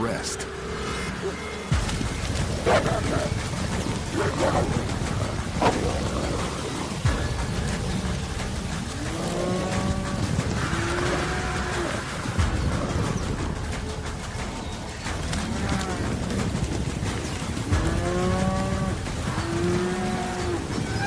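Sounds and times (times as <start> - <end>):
steady low rumble: 0.1 - 21.0.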